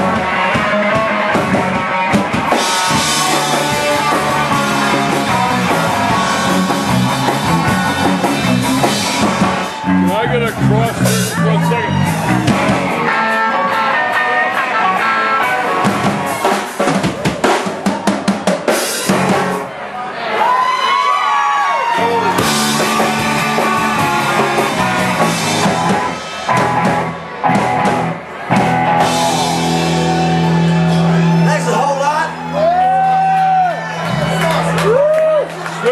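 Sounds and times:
live rock band playing: 0:00.0 - 0:20.6, 0:21.8 - 0:35.9.

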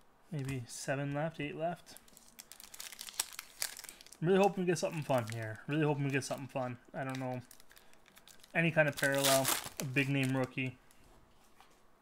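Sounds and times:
wrapper being torn and crinkled: 0:02.0 - 0:05.4, 0:07.1 - 0:10.6.

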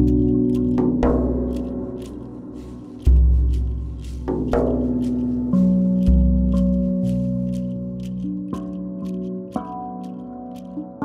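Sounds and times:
deep drum beat: 0:00.0 - 0:09.6
steel tongue drum notes: 0:00.0 - 0:11.0.

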